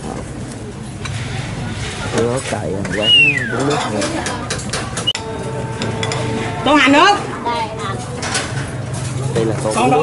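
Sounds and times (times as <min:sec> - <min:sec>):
low background din: 0:00.0 - 0:10.0.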